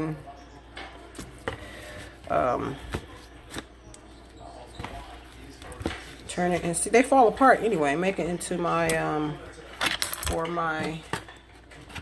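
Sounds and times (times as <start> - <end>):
soft handling noises: 0.4 - 12.0.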